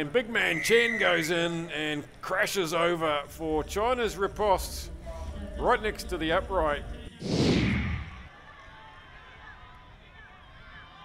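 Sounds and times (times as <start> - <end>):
low background noise: 0.0 - 7.2
whoosh sound effect: 7.2 - 8.3.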